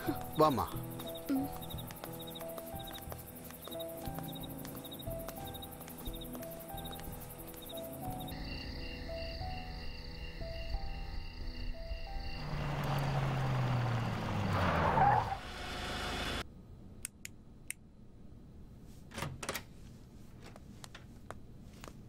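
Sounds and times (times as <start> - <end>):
background music: 0.0 - 13.9
car passing by: 12.2 - 16.4.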